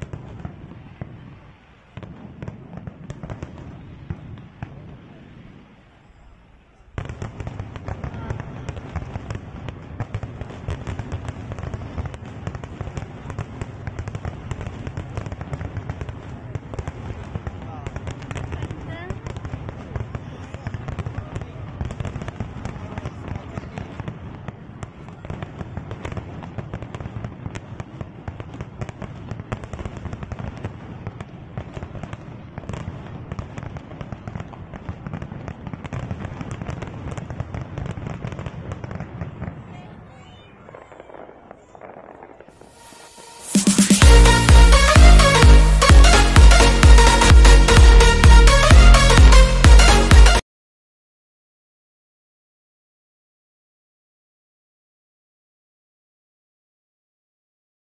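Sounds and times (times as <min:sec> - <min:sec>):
fireworks bangs and crackling: 0:00.0 - 0:50.4.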